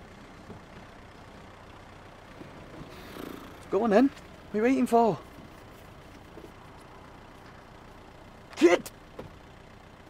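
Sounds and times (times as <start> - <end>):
low background rumble in car: 0.0 - 10.0.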